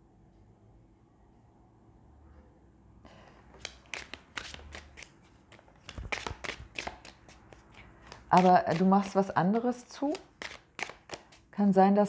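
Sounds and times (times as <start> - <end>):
cards shuffling with snaps: 3.5 - 9.3, 9.9 - 11.4.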